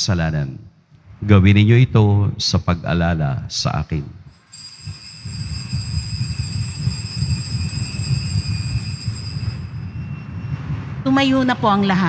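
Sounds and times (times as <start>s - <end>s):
altar bells ringing: 4.3s - 10.1s.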